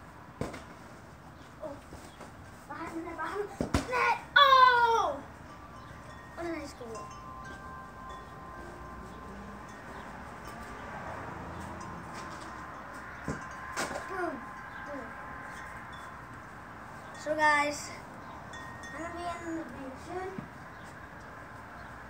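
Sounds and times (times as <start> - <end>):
broad thud: 3.6 - 4.0
faint ringing tones: 5.4 - 10.9.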